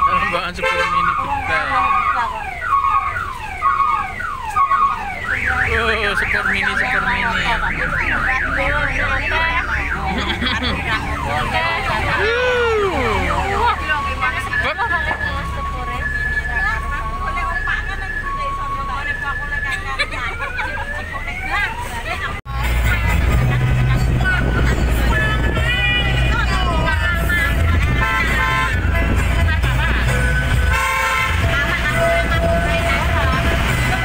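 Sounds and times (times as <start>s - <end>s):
electronic multi-tone siren horn: 0.0s - 21.9s, 24.4s - 34.0s.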